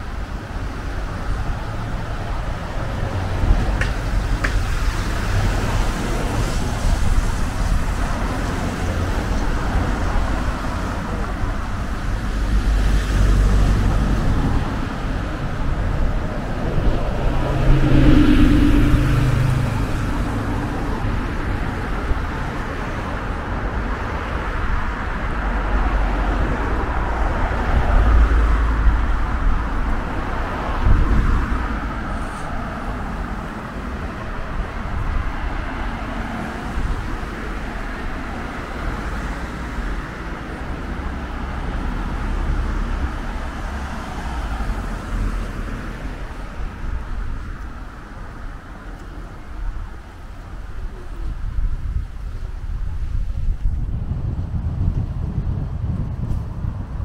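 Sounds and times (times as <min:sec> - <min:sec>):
background traffic noise: 0:00.0 - 0:57.0
cars passing close by: 0:00.0 - 0:57.0.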